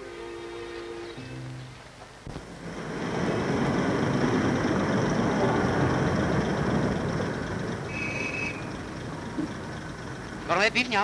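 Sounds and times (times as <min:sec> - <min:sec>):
tram rumbling past: 0:00.0 - 0:11.0.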